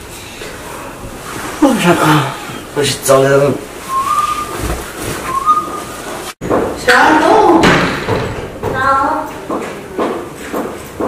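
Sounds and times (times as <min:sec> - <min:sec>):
short high whistles: 0:03.9 - 0:04.7, 0:05.3 - 0:05.9.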